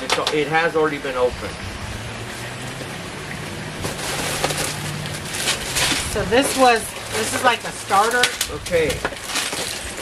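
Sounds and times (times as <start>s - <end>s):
plastic bags crinkling: 3.8s - 10.0s.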